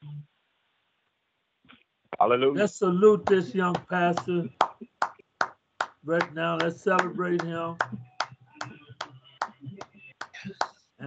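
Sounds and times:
hands clapping in rhythm: 0:02.6 - 0:10.8.

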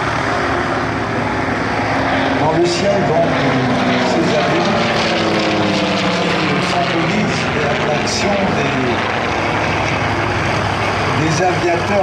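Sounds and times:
aircraft engines droning: 0:00.0 - 0:12.0.

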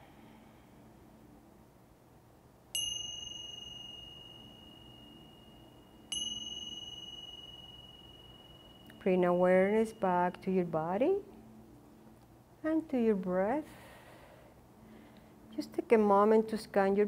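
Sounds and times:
hand chime ringing clear high tone: 0:02.8 - 0:11.2.

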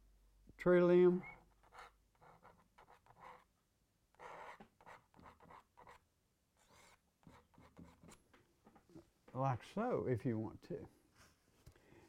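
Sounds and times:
palette knife scratching on canvas: 0:01.4 - 0:03.5, 0:04.2 - 0:06.0, 0:06.6 - 0:08.2.

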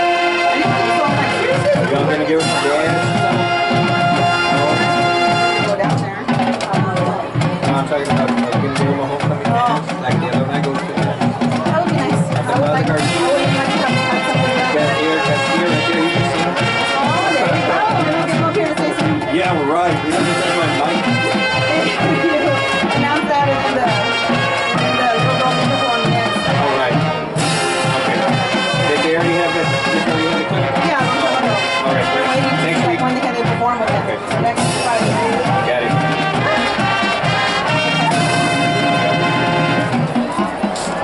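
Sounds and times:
drum strokes: 0:00.0 - 0:41.0
marching band playing: 0:00.0 - 0:41.0.

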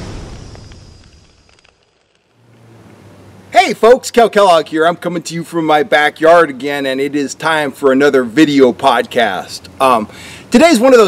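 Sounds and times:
deep boom rumble: 0:00.0 - 0:01.4
faint crackles: 0:00.0 - 0:03.0.

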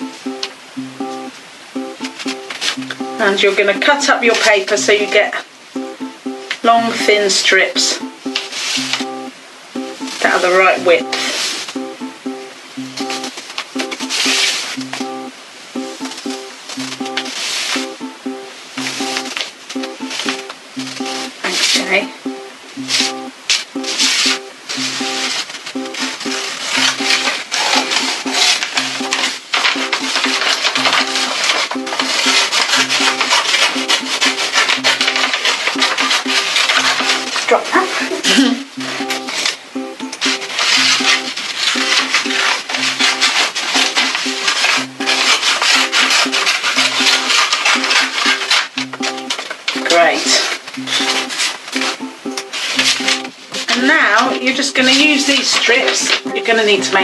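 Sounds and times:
background music: 0:00.0 - 0:37.6, 0:38.2 - 0:57.0
scissors cutting paper: 0:26.6 - 0:37.5, 0:40.5 - 0:49.8.

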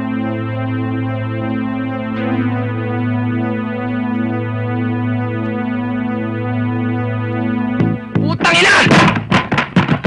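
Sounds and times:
synth music: 0:00.0 - 0:08.8
sharp thuds and knocks: 0:07.8 - 0:10.0.

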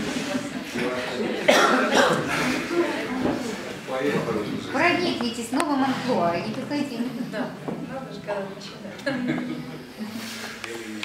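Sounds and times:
low talk: 0:00.0 - 0:08.4
person coughing: 0:01.4 - 0:02.4.

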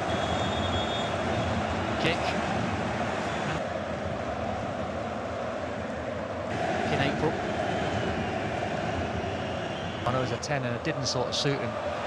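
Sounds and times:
high whistle-like sounds: 0:00.0 - 0:01.2
stadium crowd noise: 0:00.0 - 0:12.0.

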